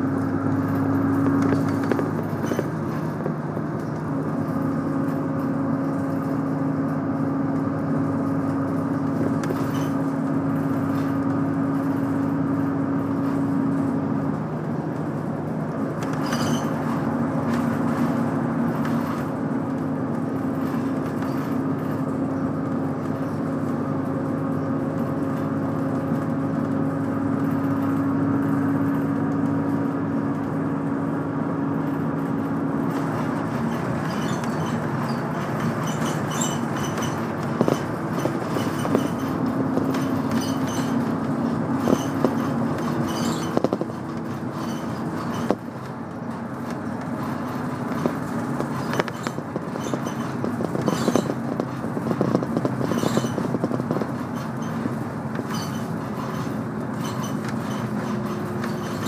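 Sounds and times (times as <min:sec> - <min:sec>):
bus engine droning: 0:00.0 - 0:59.0.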